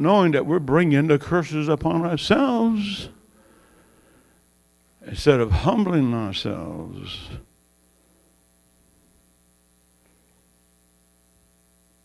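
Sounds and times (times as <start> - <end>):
person speaking: 0.0 - 3.2, 5.0 - 7.5
electrical mains hum: 0.0 - 12.0.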